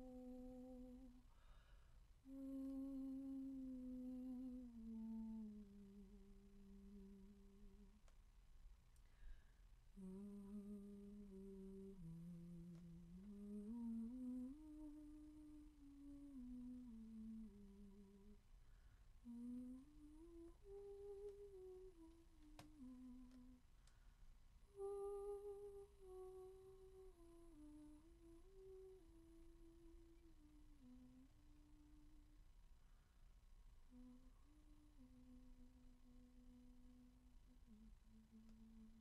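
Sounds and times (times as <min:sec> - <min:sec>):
person humming quietly: 0:00.0 - 0:08.1, 0:10.0 - 0:24.1, 0:24.7 - 0:32.5, 0:33.9 - 0:39.0.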